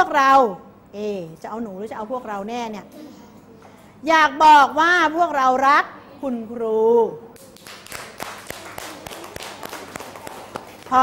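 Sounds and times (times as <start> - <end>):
people clapping: 7.4 - 11.0.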